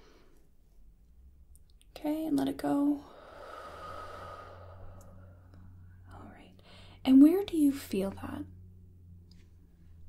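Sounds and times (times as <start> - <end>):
faint breath: 3.0 - 6.0, 6.6 - 7.0
person exhaling slowly: 3.1 - 5.8.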